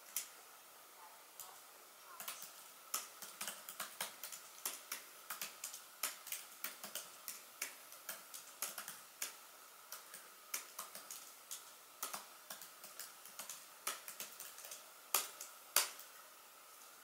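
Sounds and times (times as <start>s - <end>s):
laptop keyboard typing: 2.1s - 16.1s.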